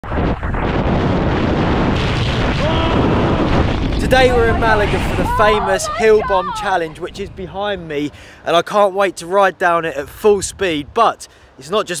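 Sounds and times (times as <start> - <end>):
bike tyre rumble: 0.0 - 8.0
wind rushing over microphone: 0.0 - 8.5, 9.9 - 11.2.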